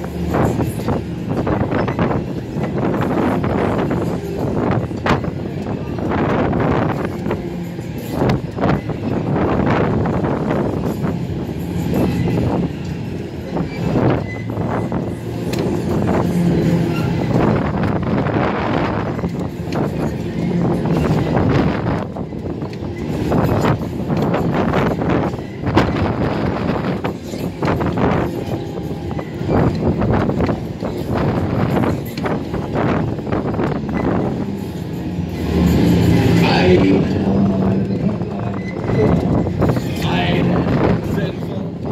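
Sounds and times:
fairground ride rumble and rattle: 0.0 - 41.9.

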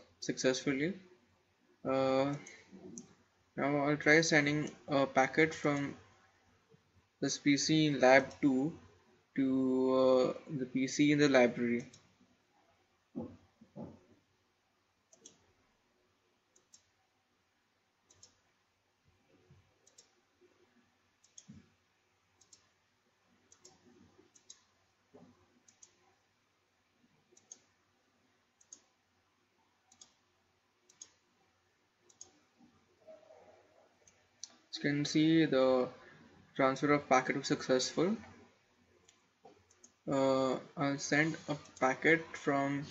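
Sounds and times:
faint computer mouse clicks: 11.8 - 12.1, 15.1 - 15.5, 16.5 - 16.9, 18.1 - 18.4, 19.8 - 20.2, 21.2 - 21.7, 22.4 - 22.8, 23.5 - 26.0, 27.4 - 27.7, 28.6 - 29.0, 29.9 - 30.2, 30.9 - 31.2, 32.1 - 32.5.

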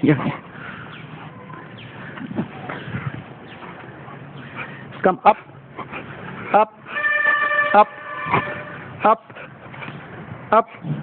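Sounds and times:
vehicle horn: 6.9 - 9.0.

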